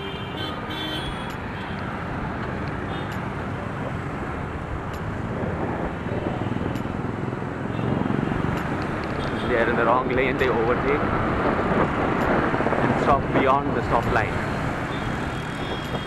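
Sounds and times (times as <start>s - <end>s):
road traffic: 0.0s - 16.0s
wind noise: 1.1s - 16.0s.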